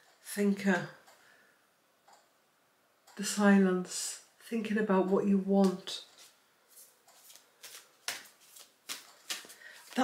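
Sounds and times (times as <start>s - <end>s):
cards being shuffled: 5.6s - 10.0s.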